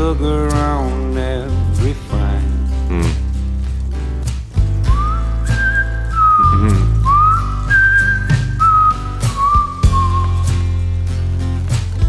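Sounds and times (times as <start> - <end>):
strummed acoustic guitar: 0.0 - 12.0
whistled melody: 4.8 - 10.8.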